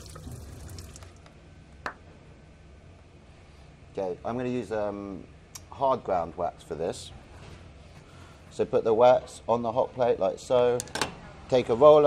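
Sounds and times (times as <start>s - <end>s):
water running from a hose: 0.0s - 1.2s.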